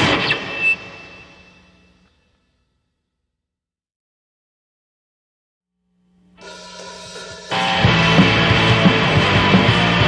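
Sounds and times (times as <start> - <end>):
punk band playing: 6.4 - 10.0.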